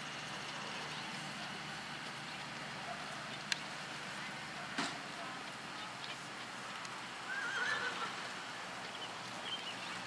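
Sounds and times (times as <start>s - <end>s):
horse whinnying: 7.3s - 8.1s.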